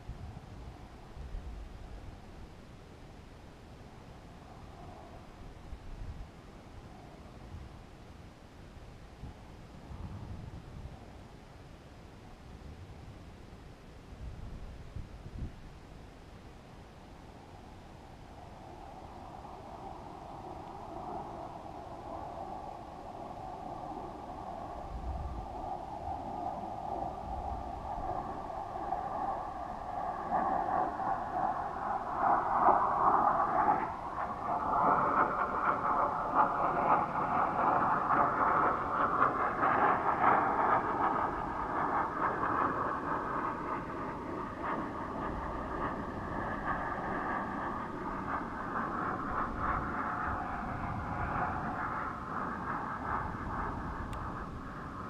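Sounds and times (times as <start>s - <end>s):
wind rushing over camera: 0.0s - 55.0s
faint wavering whistle tones: 3.8s - 8.0s, 17.0s - 55.0s.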